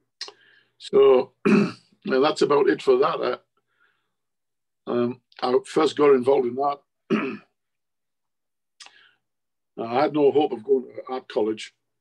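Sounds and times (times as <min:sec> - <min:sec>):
man clearing his throat: 0:01.4 - 0:02.0, 0:07.1 - 0:07.6.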